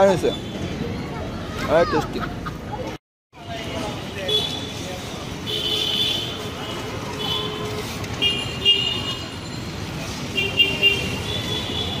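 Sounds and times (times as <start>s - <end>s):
traffic rumble: 0.0s - 12.0s
vehicle horns honking: 5.4s - 9.4s, 10.3s - 12.0s.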